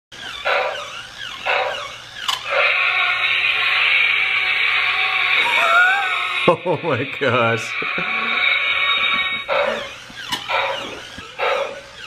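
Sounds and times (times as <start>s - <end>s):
toy dinosaur electronic roars: 0.3s - 6.5s, 7.7s - 12.0s.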